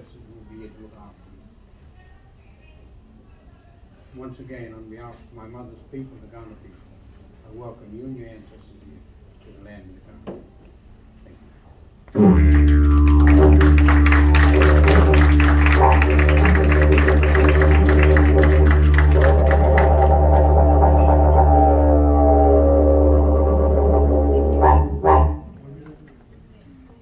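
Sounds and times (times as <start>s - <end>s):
didgeridoo drone: 12.1s - 25.6s.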